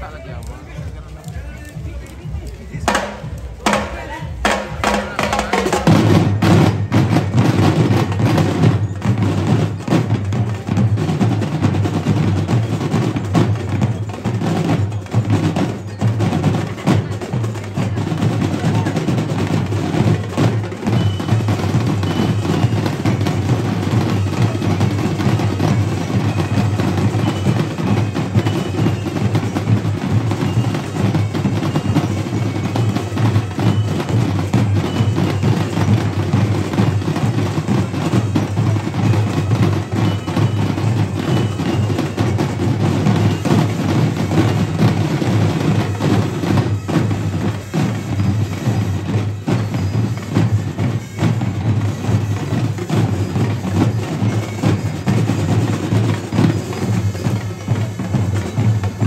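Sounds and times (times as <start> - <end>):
marching drumline cadence: 0.0 - 59.0.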